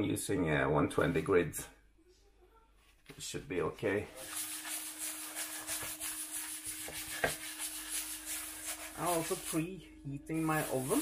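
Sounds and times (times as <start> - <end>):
sanding block scratching metal: 4.2 - 9.6, 10.4 - 11.0.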